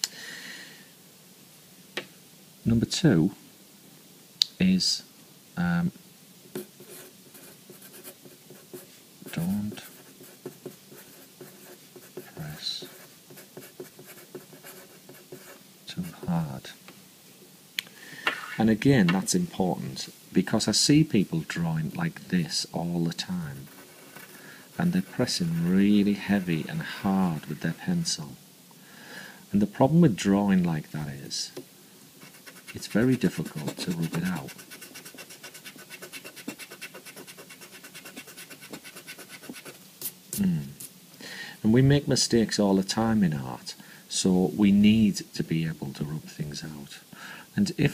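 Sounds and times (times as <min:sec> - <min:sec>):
pencil writing on paper: 0:06.6 - 0:16.2, 0:23.7 - 0:24.4, 0:32.2 - 0:39.8
eraser scrubbing on paper: 0:32.2 - 0:40.2.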